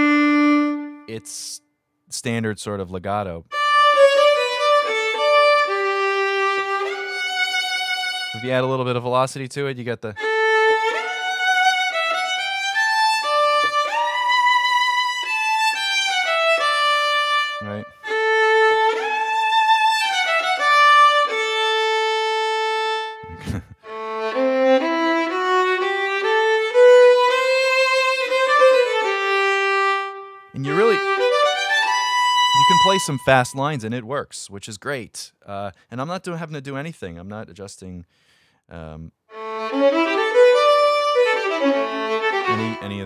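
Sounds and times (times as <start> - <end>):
sampled violin legato phrase: 0.0 - 1.6, 3.5 - 9.2, 10.2 - 34.1, 39.3 - 43.0.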